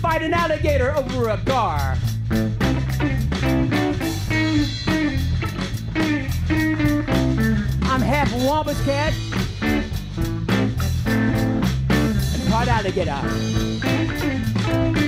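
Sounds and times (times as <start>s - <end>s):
blues-rock band playing: 0.0s - 15.0s.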